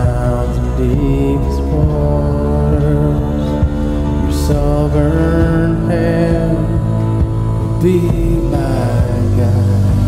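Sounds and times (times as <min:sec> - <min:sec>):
acoustic guitar strummed: 0:00.0 - 0:10.0
steady low bass: 0:00.0 - 0:10.0.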